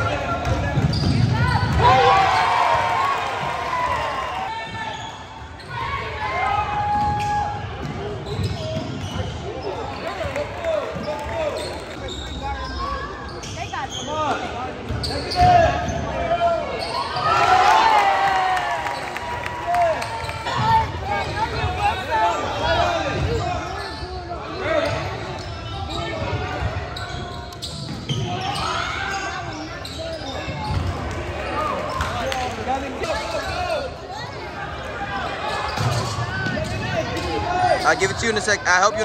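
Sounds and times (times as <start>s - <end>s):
voices of players and spectators: 0.0s - 39.0s
sneaker squeaks: 0.4s - 1.8s, 4.6s - 6.1s, 6.9s - 17.5s, 20.0s - 31.1s, 35.2s - 38.6s.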